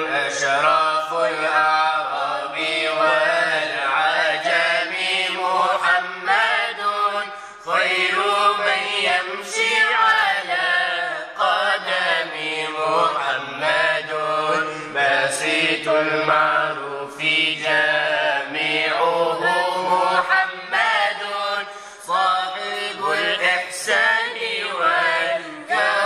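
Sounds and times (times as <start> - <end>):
person singing devotional song: 0.0 - 26.0.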